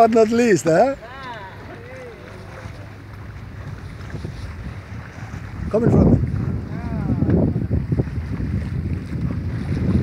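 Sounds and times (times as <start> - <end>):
water washing along hull: 0.0 - 10.0
wind noise on microphone: 1.9 - 10.0.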